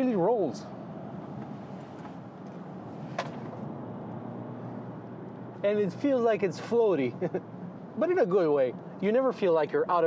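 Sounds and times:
car road and drivetrain hum: 0.0s - 9.9s.

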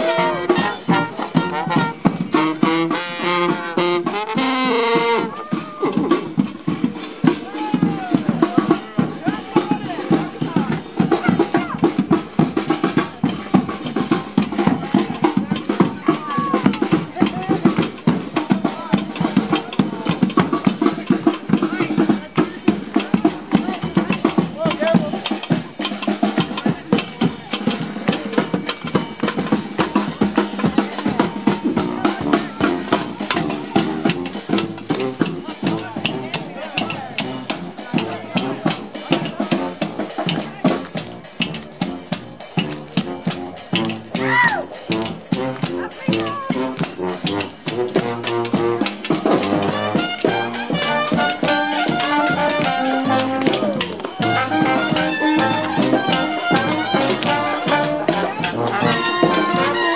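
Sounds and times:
brass horns playing: 0.0s - 22.1s, 28.8s - 59.9s
crowd talking and calling: 0.0s - 59.9s
steady drum beat: 0.0s - 59.9s.

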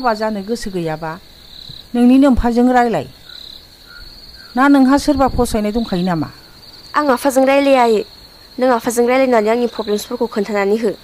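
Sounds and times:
woman speaking: 0.0s - 1.2s, 1.9s - 3.1s, 4.6s - 11.0s
crickets chirring: 0.0s - 11.0s.

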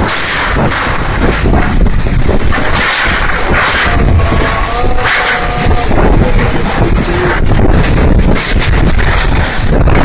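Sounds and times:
wind rushing on microphone: 0.0s - 10.0s.

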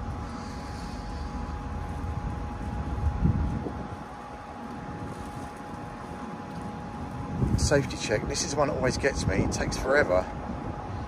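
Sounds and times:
electrical hum of two tones: 0.0s - 11.0s
wind rumbling on microphone: 0.0s - 11.0s.

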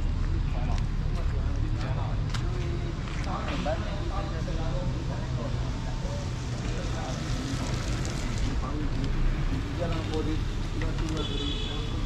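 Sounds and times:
road traffic rumble: 0.0s - 12.0s
people talking: 0.5s - 12.0s.

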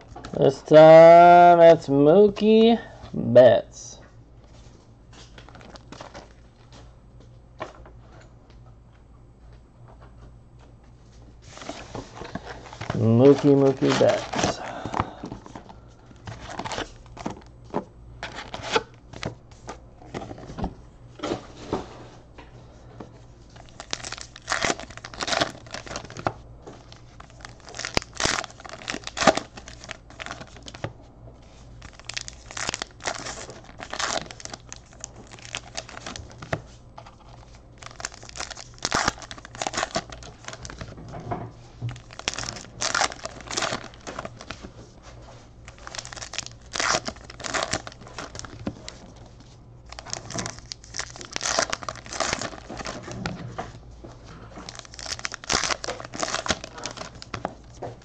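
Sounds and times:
card wrappers tearing and crinkling: 5.4s - 6.4s, 11.5s - 15.6s, 16.2s - 17.5s, 18.2s - 20.5s, 23.5s - 30.9s, 31.8s - 41.0s, 41.9s - 44.7s, 45.6s - 53.8s, 54.5s - 58.0s.

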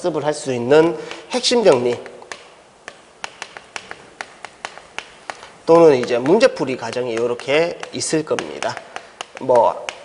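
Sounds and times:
chalk tapping on chalkboard: 0.8s - 10.0s.

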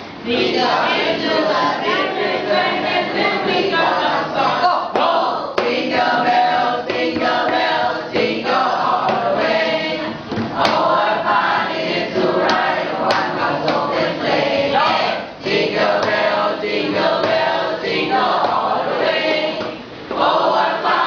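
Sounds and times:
students reading aloud in chorus: 0.2s - 21.0s.

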